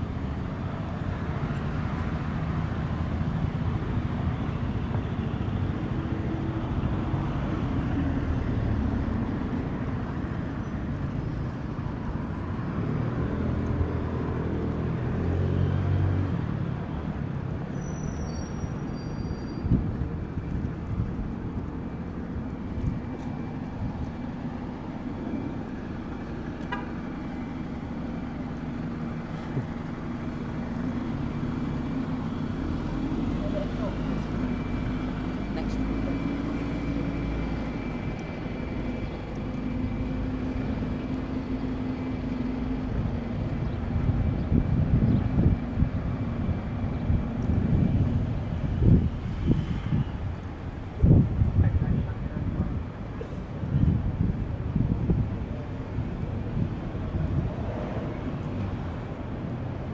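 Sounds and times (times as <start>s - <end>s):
cars and buses driving past: 0.0s - 59.9s
low engine hum: 0.0s - 59.9s.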